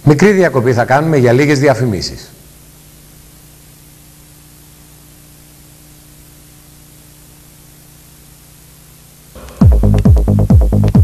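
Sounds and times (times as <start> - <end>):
faint low hum: 0.0 - 11.0
steady hiss: 0.0 - 11.0.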